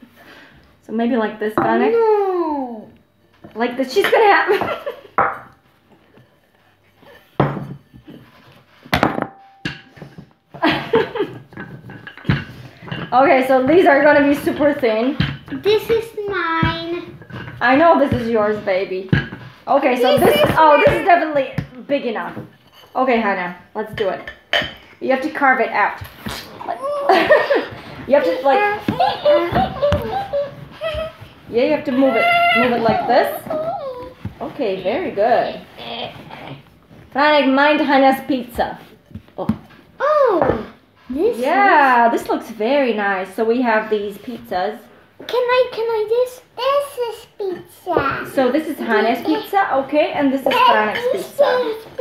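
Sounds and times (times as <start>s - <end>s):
children making high-pitched vocal sounds: 26.6s - 27.2s, 50.6s - 52.0s.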